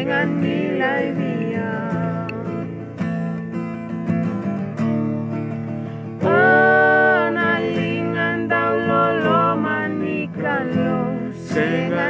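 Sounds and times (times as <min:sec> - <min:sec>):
acoustic guitar strumming: 0:00.0 - 0:12.0
voices singing a held note: 0:06.2 - 0:12.0.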